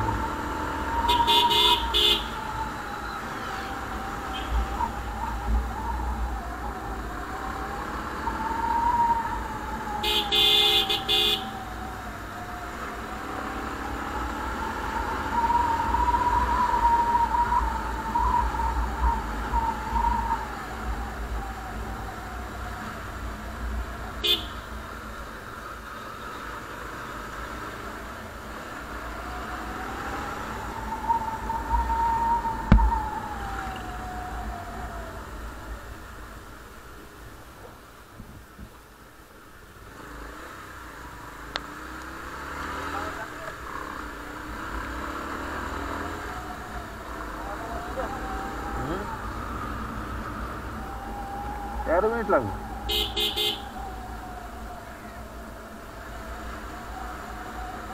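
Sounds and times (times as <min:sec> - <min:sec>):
vehicle horn: 0:01.0 - 0:02.4, 0:04.3 - 0:04.6, 0:10.0 - 0:11.5, 0:24.2 - 0:24.7, 0:52.9 - 0:53.7.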